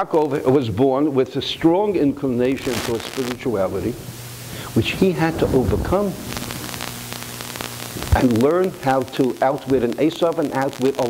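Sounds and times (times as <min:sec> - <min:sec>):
electrical mains hum and hiss: 0:00.0 - 0:11.0
faint crackling clicks: 0:05.4 - 0:11.0.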